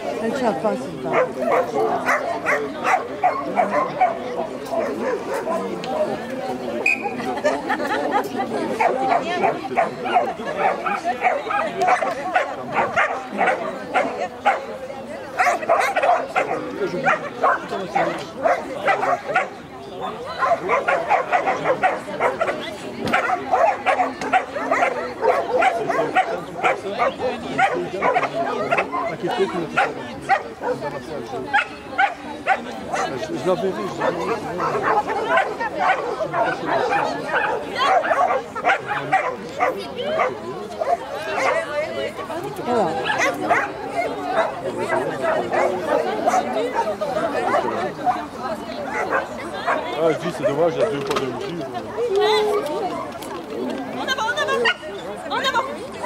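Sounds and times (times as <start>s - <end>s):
people talking: 0.0s - 56.0s
dog barking: 1.1s - 5.7s, 8.8s - 14.7s, 15.4s - 19.6s, 20.4s - 29.1s, 29.7s - 33.2s, 34.0s - 41.7s, 43.0s - 48.3s, 48.9s - 50.7s.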